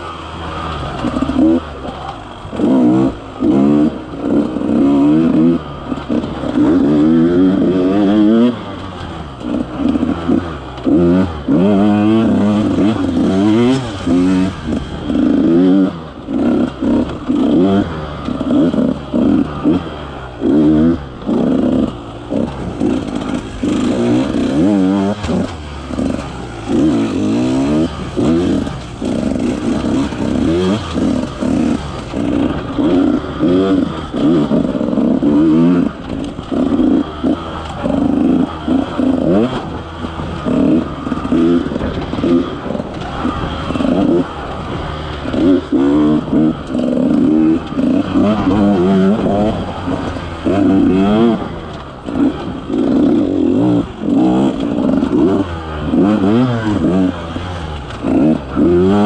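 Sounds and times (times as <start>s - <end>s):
dirt bike engine revving: 0.0s - 59.0s.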